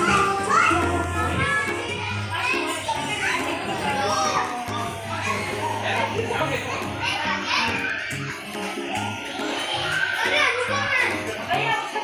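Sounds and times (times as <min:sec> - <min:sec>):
background music: 0:00.0 - 0:12.0
children's voices and chatter: 0:00.0 - 0:12.0.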